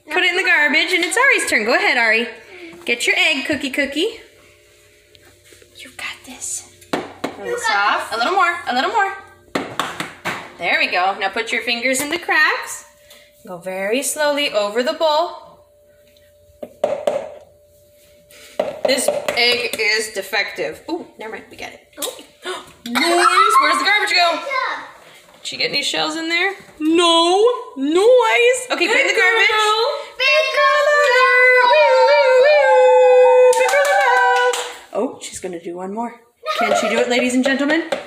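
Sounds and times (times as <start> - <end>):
egg tapping on plastic bowl: 16.7 - 17.4, 18.6 - 19.8, 37.0 - 38.0
girl's high wavering howl-like cry: 30.6 - 34.5.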